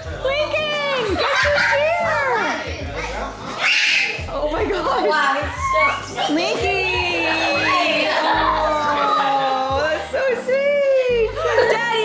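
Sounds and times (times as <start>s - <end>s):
background music: 0.0s - 12.0s
children squealing and calling out: 3.6s - 4.3s, 5.4s - 6.1s.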